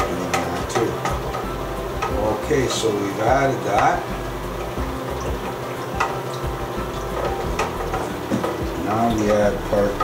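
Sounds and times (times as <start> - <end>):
steady low hum: 0.0 - 10.0
thermometer knocking against tank: 0.0 - 10.0.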